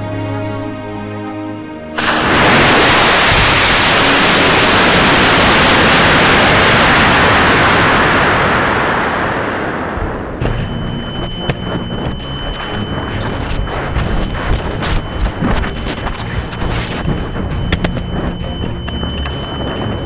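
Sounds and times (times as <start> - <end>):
sharp pop of ejection charge: 2.0 - 3.8
rocket motor rushing: 2.0 - 20.0
faint steady high tone: 10.4 - 20.0
scattered clicks: 10.4 - 20.0.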